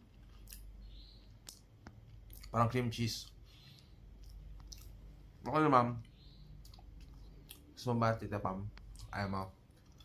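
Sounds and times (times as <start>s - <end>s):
mouth clicks while chewing: 0.2s - 2.6s, 3.7s - 5.0s, 6.6s - 7.7s.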